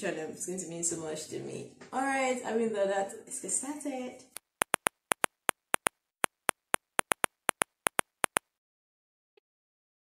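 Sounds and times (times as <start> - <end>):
keyboard key clicks: 4.4 - 8.4.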